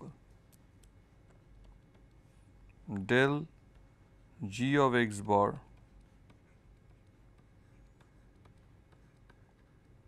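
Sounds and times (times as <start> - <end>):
stylus tapping on tablet: 0.5 - 2.4, 5.6 - 10.0.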